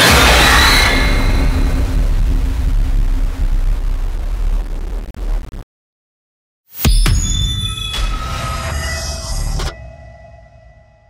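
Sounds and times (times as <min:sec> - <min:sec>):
rumbling jump-scare effect: 0:00.0 - 0:05.6, 0:06.8 - 0:11.0.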